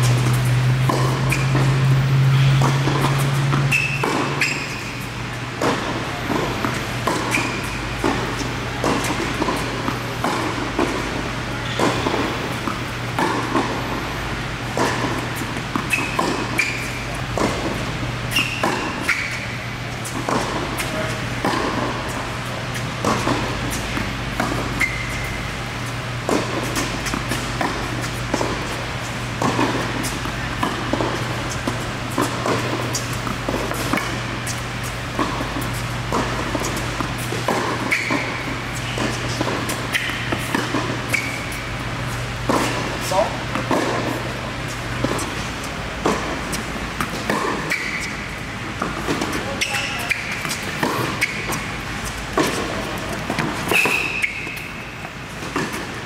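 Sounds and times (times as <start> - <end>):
shoes squeaking: 0.0 - 56.0
tennis balls hit by racquets: 0.0 - 56.0.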